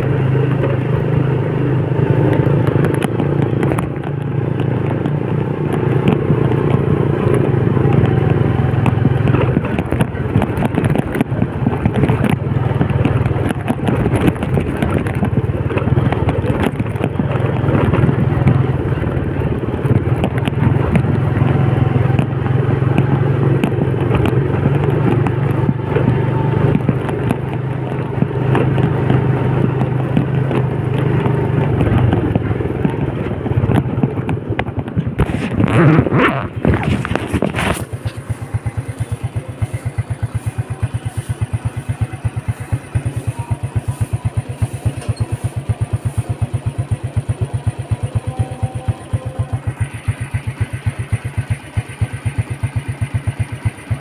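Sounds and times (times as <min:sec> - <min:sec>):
rattles and clatter: 0:00.0 - 0:54.0
small motorcycle engine running: 0:00.0 - 0:54.0.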